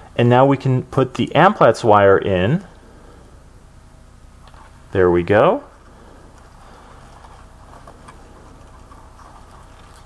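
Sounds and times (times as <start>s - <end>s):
room hiss: 0.0s - 10.0s
soft ticks and rustles: 6.3s - 10.0s.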